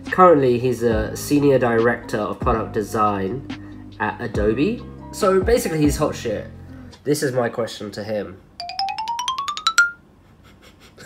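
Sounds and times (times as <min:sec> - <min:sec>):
rising bell-like notes: 0:08.6 - 0:10.0.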